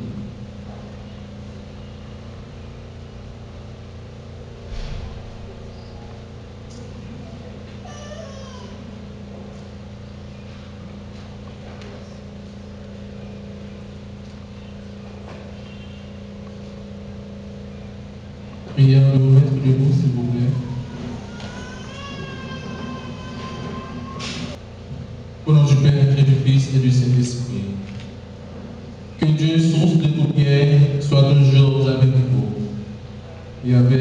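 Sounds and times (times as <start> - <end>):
high-pitched feedback whine: 0.0 - 7.7, 9.1 - 24.6
dull rumble: 0.0 - 25.4
steady low hum: 0.0 - 34.0.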